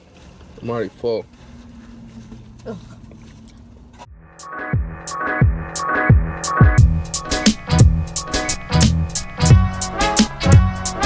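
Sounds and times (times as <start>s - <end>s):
electronic music with a beat: 4.2s - 11.0s.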